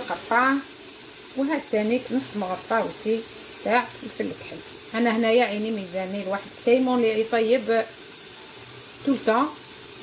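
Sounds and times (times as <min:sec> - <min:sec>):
woman speaking: 0:00.0 - 0:00.7, 0:01.4 - 0:07.9, 0:09.0 - 0:09.6
food sizzling in oil: 0:00.0 - 0:10.0.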